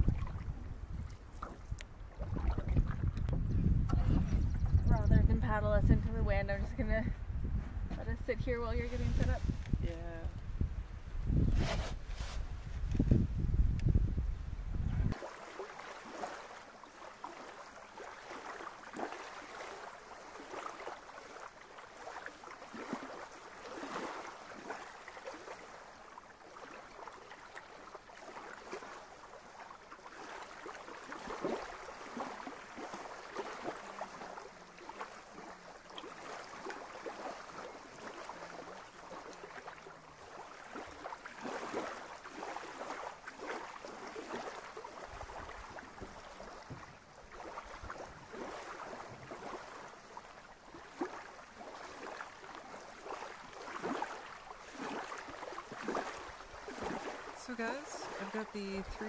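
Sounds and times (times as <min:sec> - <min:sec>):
small waves lapping on shore: 0:00.0 - 0:03.4, 0:08.0 - 0:13.8, 0:15.1 - 0:59.0
wind rumbling on microphone: 0:00.0 - 0:15.3, 0:45.0 - 0:49.8.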